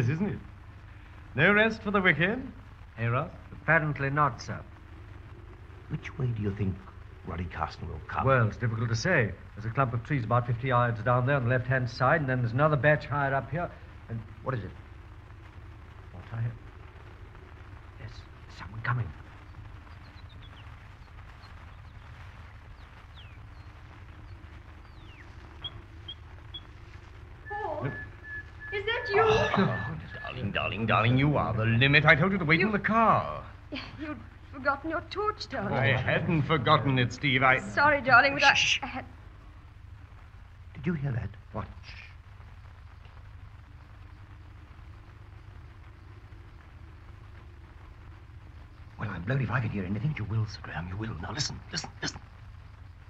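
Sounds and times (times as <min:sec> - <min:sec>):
faint radio hiss: 0:00.0 - 0:53.0
low hum: 0:00.0 - 0:53.0
steady low rumble: 0:00.0 - 0:53.0
bird chirps: 0:19.4 - 0:31.8.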